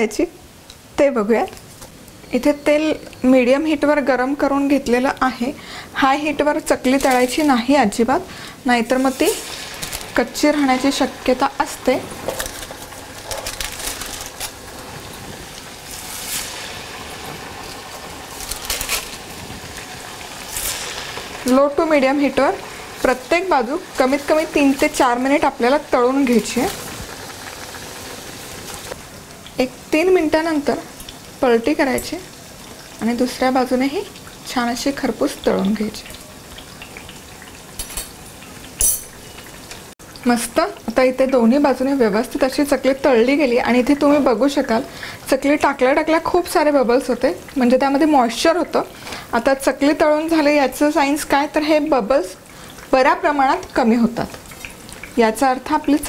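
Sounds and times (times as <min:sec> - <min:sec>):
dough sizzling in hot oil: 0:00.0 - 0:56.0.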